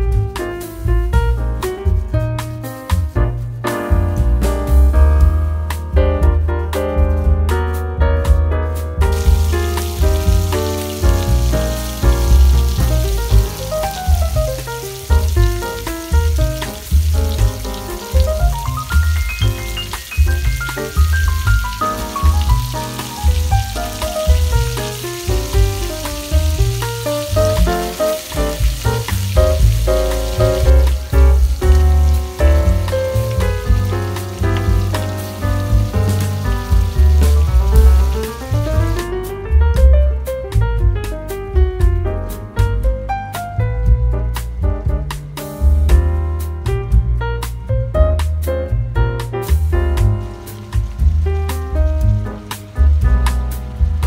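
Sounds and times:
music with pulsing bass: 0.0 - 54.0
patties sizzling in a pan: 9.1 - 39.1, 50.0 - 54.0.

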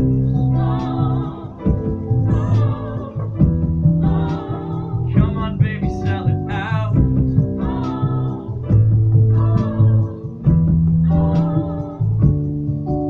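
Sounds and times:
person singing with vibrato: 0.0 - 10.5, 11.1 - 12.3
bass guitar: 0.0 - 13.0
guitar: 0.0 - 13.0.

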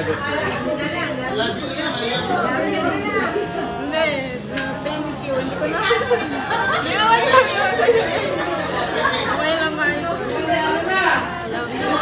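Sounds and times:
voices chattering: 0.0 - 12.0.

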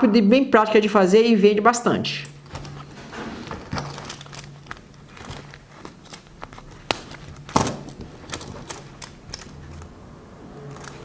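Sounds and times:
cloth rustling: 2.4 - 9.9
coin purse clasp clicks: 3.8 - 9.9.

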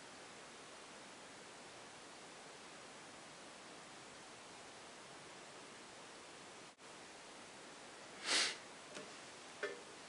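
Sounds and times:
steady background hiss: 0.0 - 10.0
person sniffing: 8.2 - 8.6.

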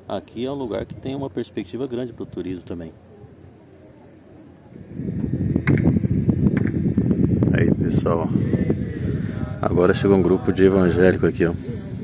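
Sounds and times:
wind buffeting microphone: 0.7 - 1.3, 4.7 - 12.0.

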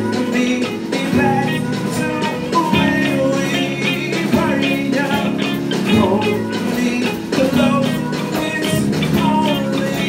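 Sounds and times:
amplified singing voice: 0.0 - 10.0
drum kit: 0.0 - 10.0
keyboard: 0.0 - 10.0.

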